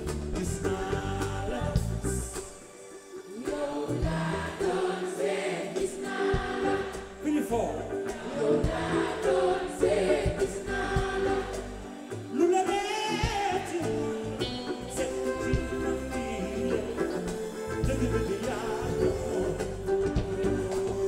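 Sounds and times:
steady bass: 0:00.0 - 0:02.4, 0:06.4 - 0:11.9, 0:13.2 - 0:21.0
live band with singing: 0:00.0 - 0:21.0.

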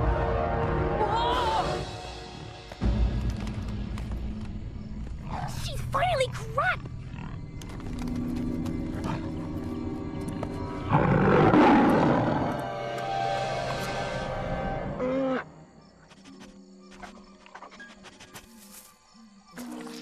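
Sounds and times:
dramatic music score: 0:00.0 - 0:15.1.

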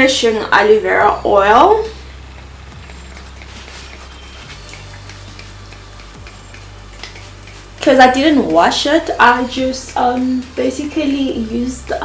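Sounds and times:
steady low hum: 0:00.0 - 0:12.0
pump spray bottle spritzes: 0:02.1 - 0:12.0.

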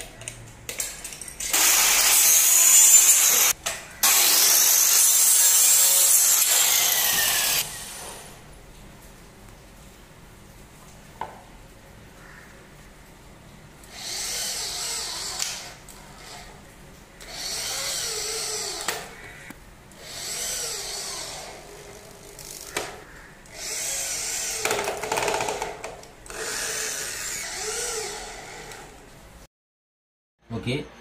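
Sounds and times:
electric drill boring into plastic: 0:01.5 - 0:08.3, 0:13.9 - 0:16.5, 0:17.2 - 0:19.1, 0:20.0 - 0:22.9, 0:23.5 - 0:29.0.

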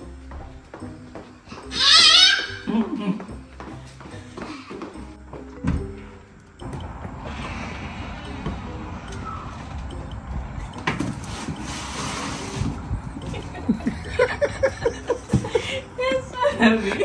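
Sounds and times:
outdoor background noise: 0:00.0 - 0:17.0
woman laughing: 0:02.6 - 0:03.3, 0:13.2 - 0:17.0
rush of hiss: 0:11.3 - 0:12.8.

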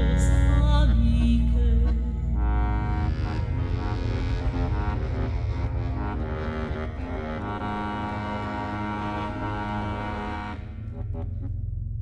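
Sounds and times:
accordion chords: 0:00.0 - 0:11.4
low rumbling drone: 0:00.0 - 0:12.0.

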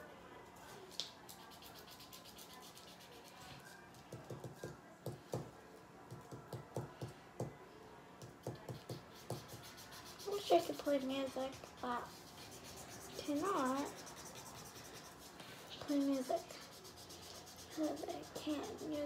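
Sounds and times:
marker scratching on paper: 0:01.3 - 0:03.7, 0:08.6 - 0:19.0.

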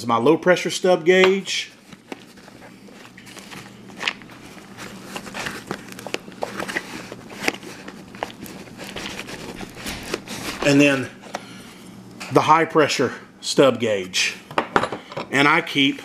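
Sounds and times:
fabric rustling: 0:01.7 - 0:11.2.

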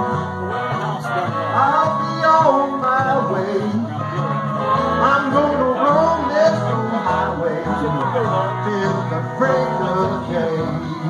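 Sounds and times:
guitar: 0:00.0 - 0:11.0
live country-blues band: 0:00.0 - 0:11.0.

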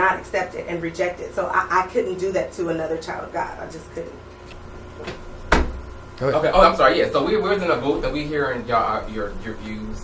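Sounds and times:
low steady hum: 0:00.0 - 0:10.0
sharp knock with low thud: 0:05.0 - 0:05.9.

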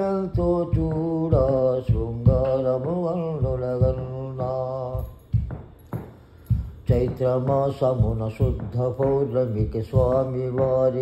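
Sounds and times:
elderly man chanting a song: 0:00.0 - 0:05.2, 0:06.9 - 0:11.0.

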